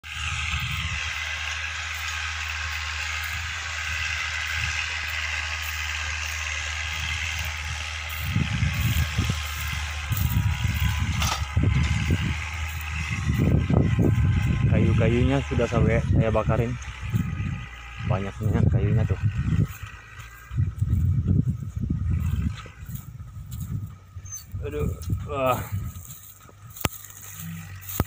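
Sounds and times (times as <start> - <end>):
distant tractor engine: 0.0 - 28.0
wind rumbling on microphone: 0.0 - 28.0.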